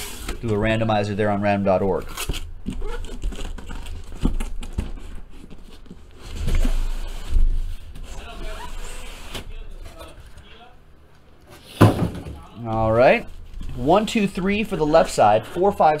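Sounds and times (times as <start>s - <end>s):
cardboard rubbing and scraping: 2.7s - 9.6s
heavy cardboard thump: 11.8s - 12.4s.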